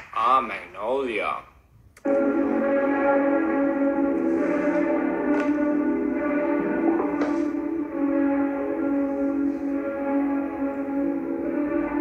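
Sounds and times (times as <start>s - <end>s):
instrumental music with sustained notes: 2.0s - 12.0s.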